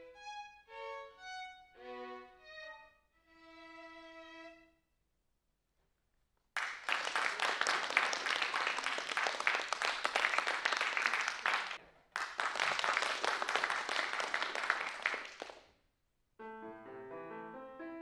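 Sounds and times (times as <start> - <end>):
people clapping in a hall: 6.5 - 15.8.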